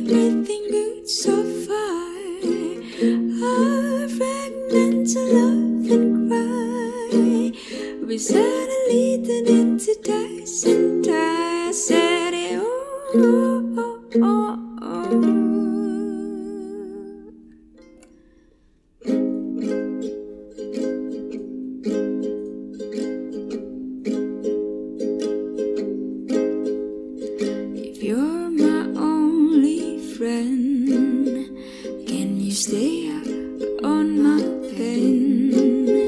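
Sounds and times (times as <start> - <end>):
person singing with vibrato: 0.0 - 17.4, 27.8 - 36.0
ukulele strumming chords: 0.0 - 36.0.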